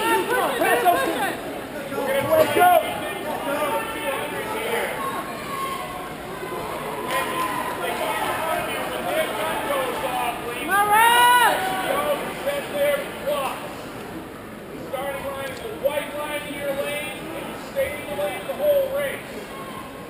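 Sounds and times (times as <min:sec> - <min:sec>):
spectators cheering and chattering: 0:00.0 - 0:20.0.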